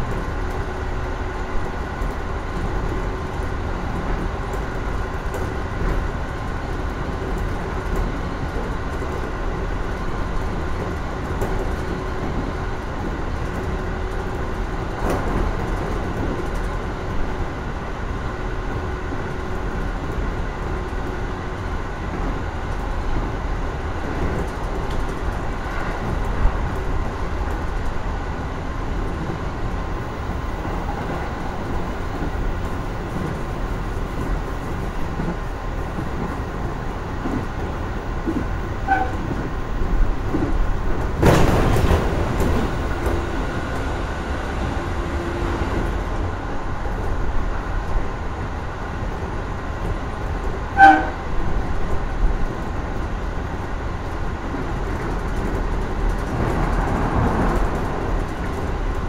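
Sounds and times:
faint train whine: 16.8s - 54.7s
wheel-on-rail running noise: 18.7s - 59.0s.

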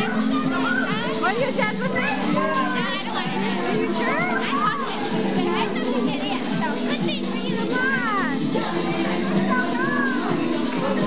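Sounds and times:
crowd of lively voices: 0.0s - 11.0s
dance music: 0.0s - 11.0s.

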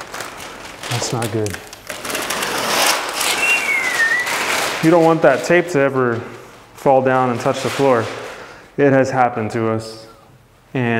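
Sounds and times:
paper and tape rustling: 0.0s - 8.5s
short squeaky tone: 3.2s - 4.6s.

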